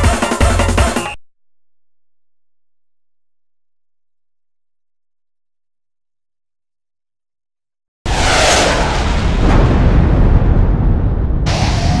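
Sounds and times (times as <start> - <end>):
music: 0.0 - 1.2
whoosh: 8.1 - 10.4
deep boom: 8.1 - 12.0
low rumble: 8.1 - 12.0.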